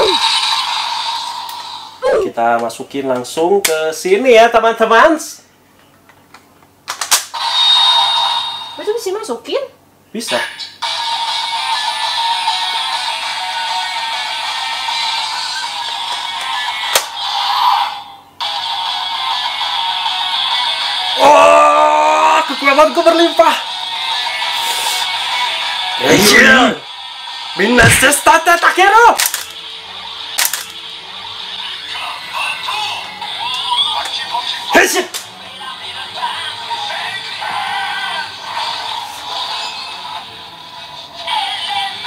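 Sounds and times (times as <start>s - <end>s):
tinny electronic toy music: 10.8s - 21.2s
sharp click: 29.2s - 29.6s, 30.4s - 30.7s.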